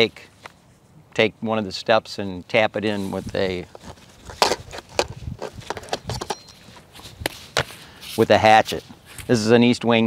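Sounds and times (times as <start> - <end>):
tools knocking and clattering: 4.3 - 6.8.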